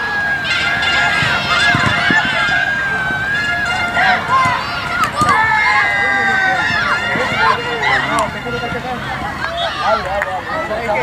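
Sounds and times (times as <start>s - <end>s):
high-pitched cries: 0.0s - 8.2s
children shouting: 0.0s - 11.0s.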